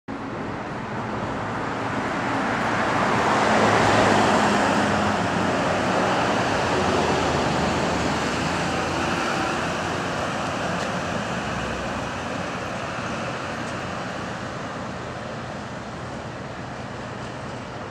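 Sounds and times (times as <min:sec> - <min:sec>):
steady traffic hum: 0:00.1 - 0:17.9
car passing: 0:01.3 - 0:14.5.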